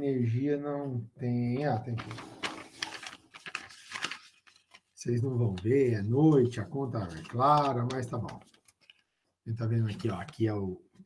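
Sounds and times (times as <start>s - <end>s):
paper rustling and crinkling: 1.7s - 9.1s, 9.8s - 10.5s.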